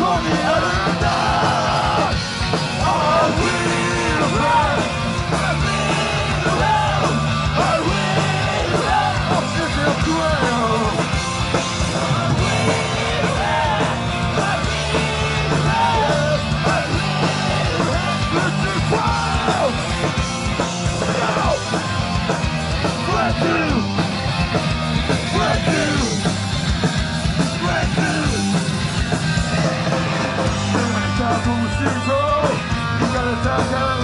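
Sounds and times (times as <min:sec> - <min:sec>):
shouted vocals: 0:00.0 - 0:11.0, 0:11.9 - 0:20.0, 0:21.0 - 0:21.9, 0:22.9 - 0:23.9, 0:25.2 - 0:26.2, 0:27.5 - 0:28.6
distorted electric guitar: 0:00.0 - 0:34.0
drums: 0:00.0 - 0:34.0.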